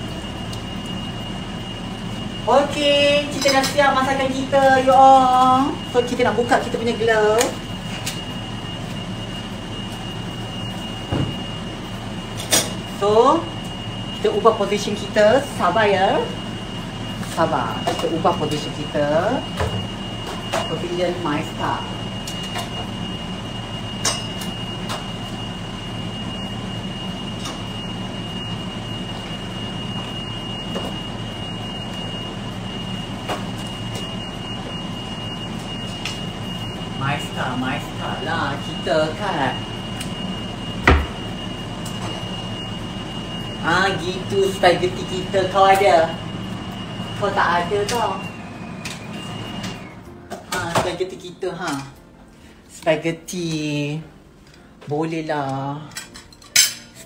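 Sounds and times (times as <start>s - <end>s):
high whine: 0.0s - 51.8s
machine humming: 0.0s - 55.3s.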